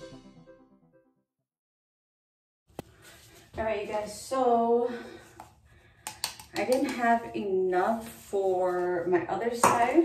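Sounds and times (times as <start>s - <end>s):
woman speaking: 3.6s - 5.2s, 6.5s - 10.0s.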